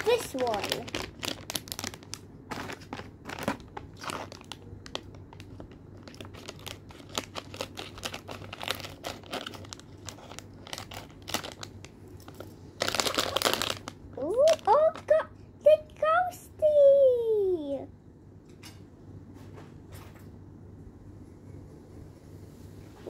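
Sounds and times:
plastic bag crinkling: 0.0 - 15.1.

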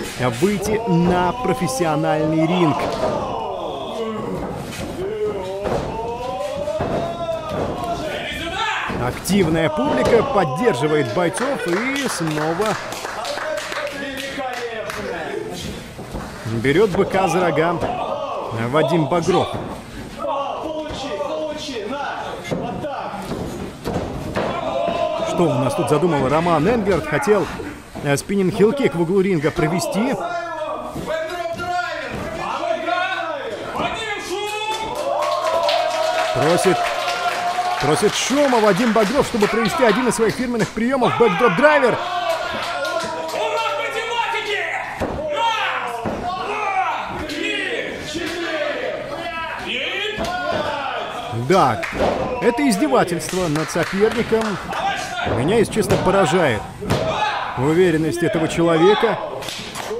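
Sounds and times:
people shouting: 0.5 - 11.8, 16.8 - 19.6, 24.3 - 27.8, 40.8 - 51.4, 54.7 - 57.6
bodies thudding on wrestling ring: 2.5 - 10.4, 22.4 - 25.3.

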